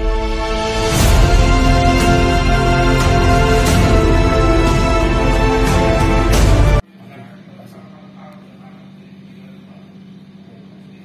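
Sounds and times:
low electrical hum: 0:06.8 - 0:11.0.

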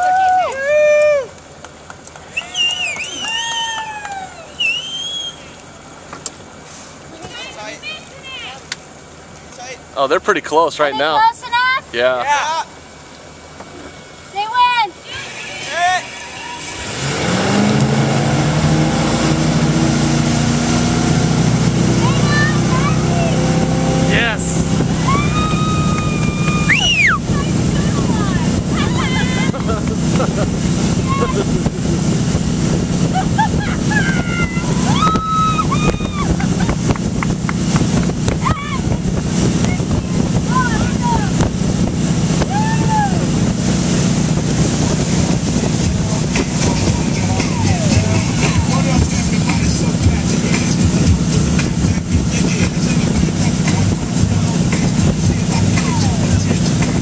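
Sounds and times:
boat engine at full throttle: 0:00.0 - 0:57.0
water rushing along hull: 0:00.0 - 0:57.0
high-pitched shouts: 0:02.4 - 0:04.6, 0:14.4 - 0:16.6, 0:25.0 - 0:29.6, 0:42.5 - 0:43.3.

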